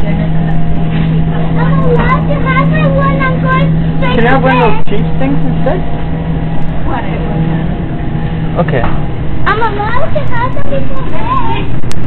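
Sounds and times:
background rumble: 0.0 - 12.0
steady low hum: 0.0 - 12.0
young child's high-pitched voice: 1.6 - 4.9, 9.5 - 11.8.

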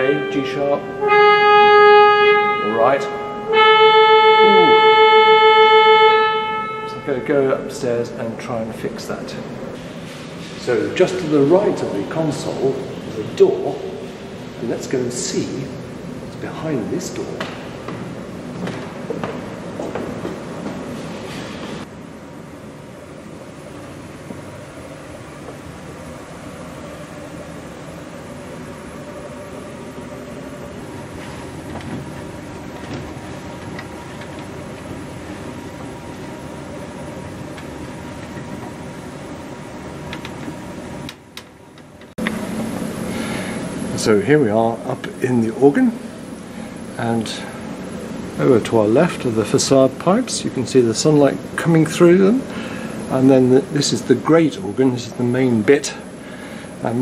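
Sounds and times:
steady hum: 0.0 - 57.0
footsteps on wooden ladder: 17.9 - 20.9.

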